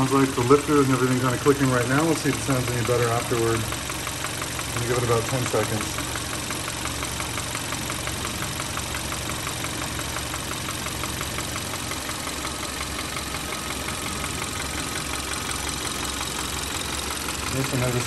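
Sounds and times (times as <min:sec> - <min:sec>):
car engine idling: 0:00.0 - 0:18.0
rapid clicking from engine: 0:00.0 - 0:18.0.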